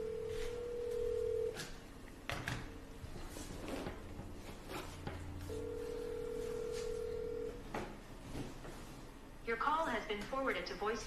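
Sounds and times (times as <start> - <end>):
telephone ringback tone: 0.0 - 1.6, 5.4 - 7.6.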